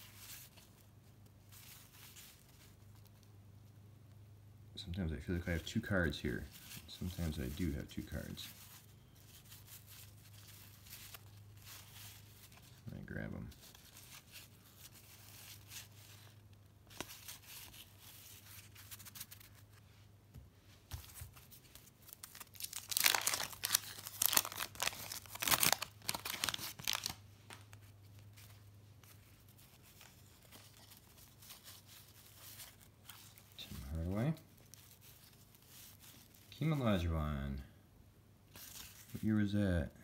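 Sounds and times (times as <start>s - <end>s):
handling of cards: 0.0s - 4.2s, 5.0s - 37.0s, 38.5s - 39.6s
wrapper tearing and crinkling: 21.4s - 28.4s, 34.5s - 36.5s.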